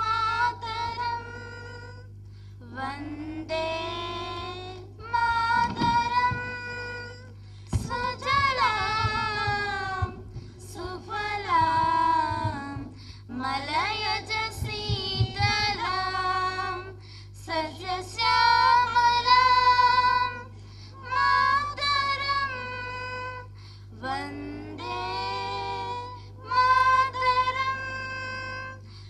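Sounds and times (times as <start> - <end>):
girls singing through a pa: 0.0 - 29.0
steady low hum: 0.0 - 29.0.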